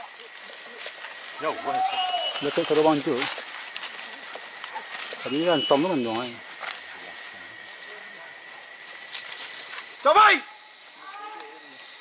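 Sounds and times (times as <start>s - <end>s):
man calling wordlessly: 1.4s - 3.3s, 5.2s - 6.5s.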